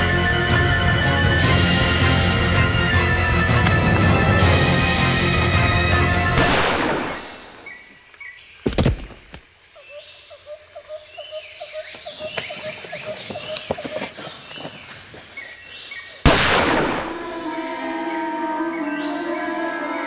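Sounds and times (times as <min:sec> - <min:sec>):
revolver gunshot: 0:06.4 - 0:07.5, 0:16.3 - 0:17.2.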